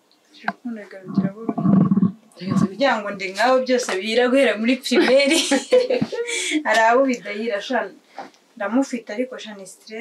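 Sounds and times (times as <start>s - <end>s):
woman talking: 0.4s - 8.0s, 8.6s - 10.0s.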